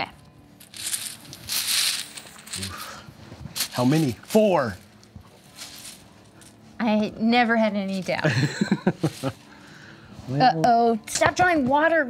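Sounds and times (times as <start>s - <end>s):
cloth bag and pieces rustling: 0.6s - 6.8s, 8.8s - 9.5s.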